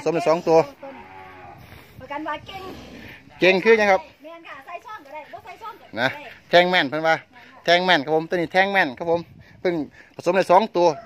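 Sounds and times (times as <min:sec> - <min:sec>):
cattle mooing: 0:00.6 - 0:01.8.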